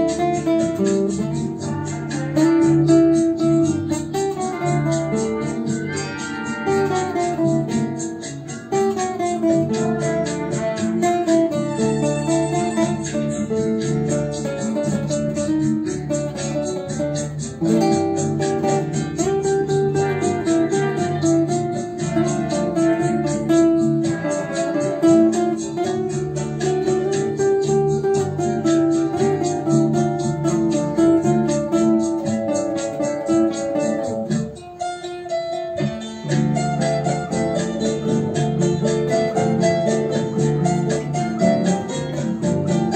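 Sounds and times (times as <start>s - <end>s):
classical guitar playing: 0.0s - 42.9s.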